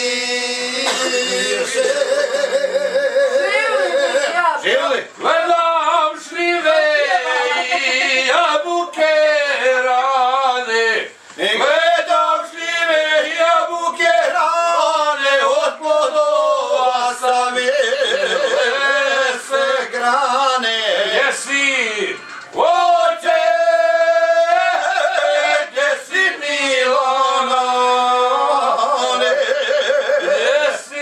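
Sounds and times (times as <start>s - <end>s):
men singing unaccompanied: 0.0s - 4.4s, 5.2s - 31.0s.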